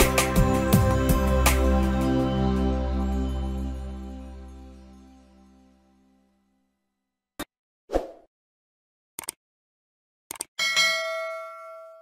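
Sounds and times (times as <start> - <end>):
bell-like ding: 10.6 - 12.0.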